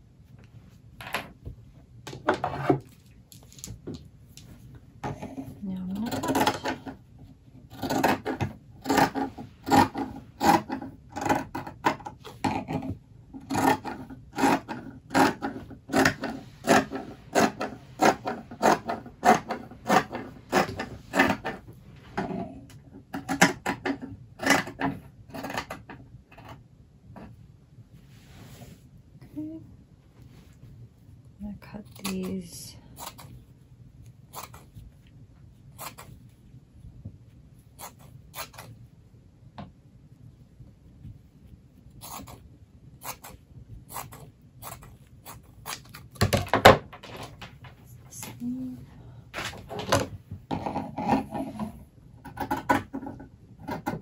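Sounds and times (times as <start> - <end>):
shears snipping fabric: 31.7 - 33.4, 34.3 - 34.7, 35.7 - 36.2, 37.7 - 38.8, 42.0 - 42.4, 43.0 - 46.2.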